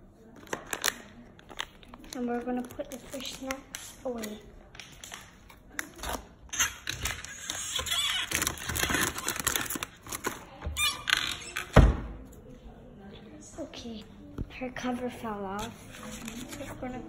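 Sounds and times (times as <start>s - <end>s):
food packets rustling: 0.4s - 10.6s, 15.6s - 17.0s.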